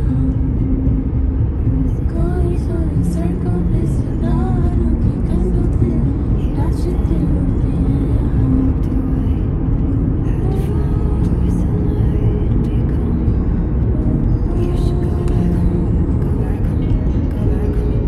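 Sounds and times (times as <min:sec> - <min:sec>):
car rumbling inside cabin: 0:00.0 - 0:18.0.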